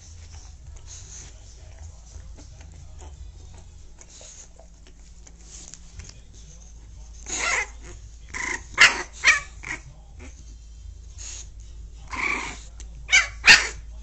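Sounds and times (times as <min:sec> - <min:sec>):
dog barking: 0:07.3 - 0:09.8, 0:12.1 - 0:13.9.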